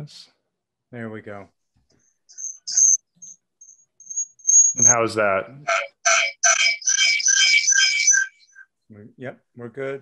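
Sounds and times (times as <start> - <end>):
high-pitched audio feedback chirps: 2.3 - 8.7.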